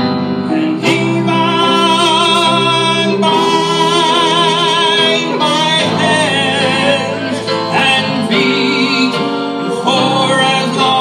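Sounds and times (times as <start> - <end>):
live country band music: 0.0 - 11.0.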